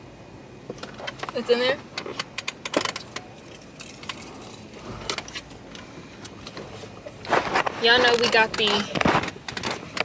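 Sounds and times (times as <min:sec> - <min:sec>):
metal buckle clinking on plastic: 0:08.0 - 0:10.0.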